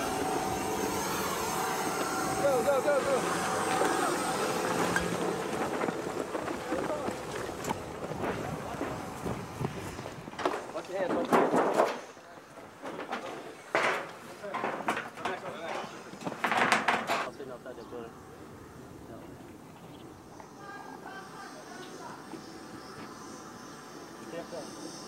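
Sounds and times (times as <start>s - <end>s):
people shouting: 1.4s - 4.9s.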